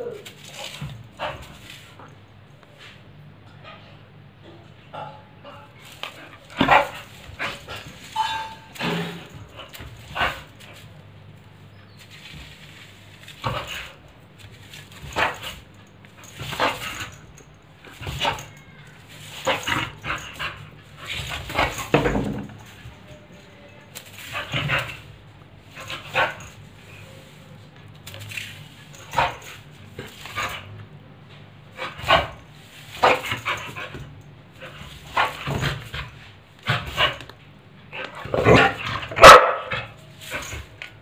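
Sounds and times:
dog whining: 0.0s - 0.3s
dog barking: 38.5s - 40.0s.

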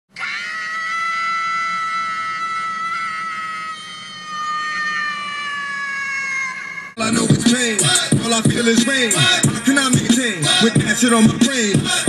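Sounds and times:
person screaming high-pitched: 0.2s - 7.0s.

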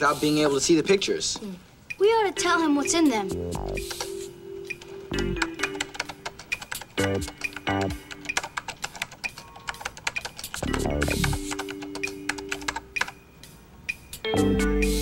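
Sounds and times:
synthesizer music: 2.0s - 8.6s, 10.6s - 13.0s.

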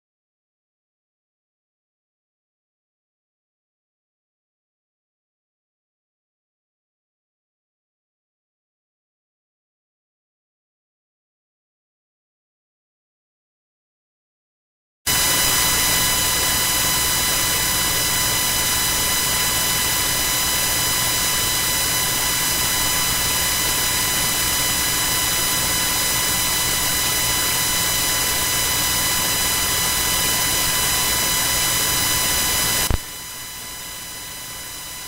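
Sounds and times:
buzz of steady tones: 15.1s - 35.0s
loud static hiss: 15.1s - 35.0s.

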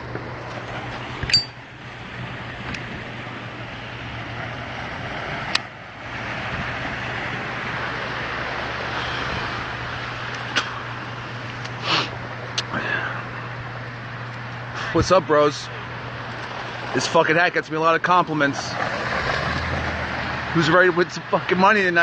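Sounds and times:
traffic noise with low hum: 0.0s - 22.0s
metallic clink: 1.3s - 1.6s.

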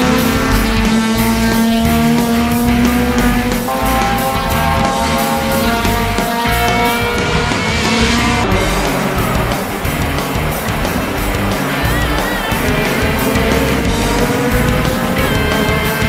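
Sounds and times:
hard rock music: 0.0s - 16.0s
racing car engines: 0.0s - 16.0s.

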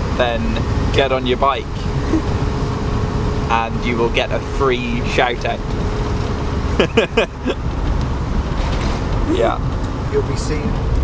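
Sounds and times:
road and engine rumble: 0.0s - 11.0s
burst of laughter: 6.8s - 7.6s.

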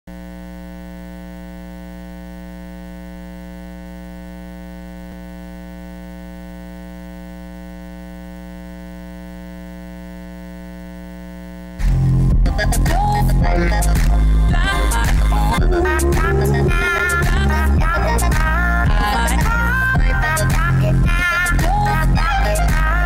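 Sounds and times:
electrical mains hum: 0.1s - 23.0s
music: 11.8s - 23.0s.

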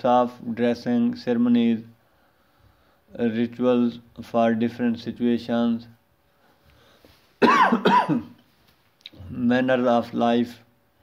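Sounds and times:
man coughing: 7.4s - 8.4s.

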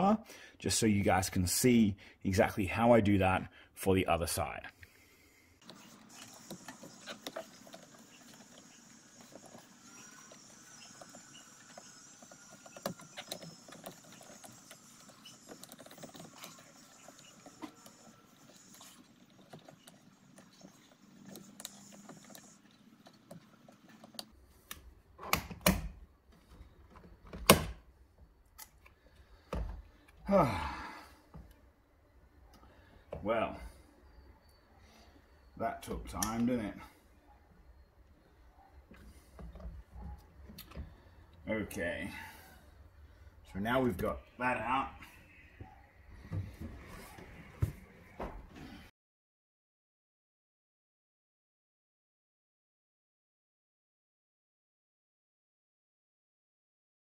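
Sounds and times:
screwdriver scraping: 5.6s - 24.4s.

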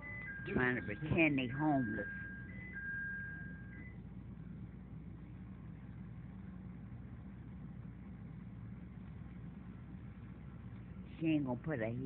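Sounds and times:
train hum: 0.0s - 12.0s.

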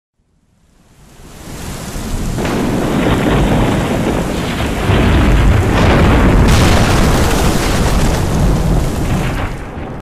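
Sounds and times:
heavy rain: 0.3s - 10.0s
low thunder rumble: 2.0s - 10.0s.

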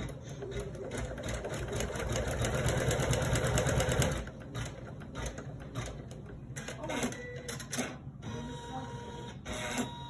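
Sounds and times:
embroidery machine stitching: 0.0s - 7.6s.

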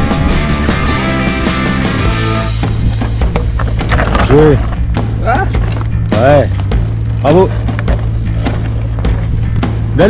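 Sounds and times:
music: 0.0s - 10.0s
bike knocking and clattering on stones: 2.6s - 9.7s.

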